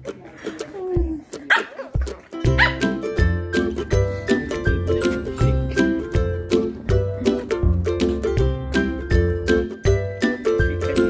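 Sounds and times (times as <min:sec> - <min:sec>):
background music with steady beat: 0:00.0 - 0:11.0
puppy barking high-pitched: 0:01.5 - 0:01.8, 0:02.6 - 0:02.9.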